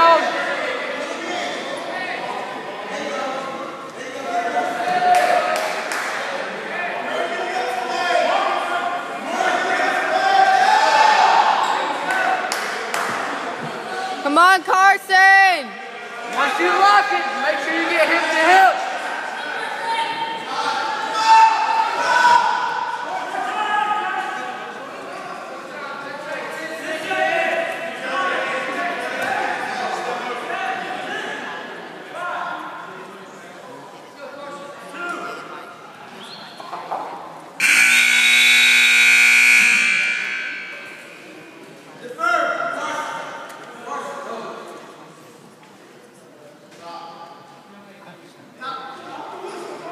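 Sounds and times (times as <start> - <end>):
scoreboard buzzer: 37.6 - 41.3.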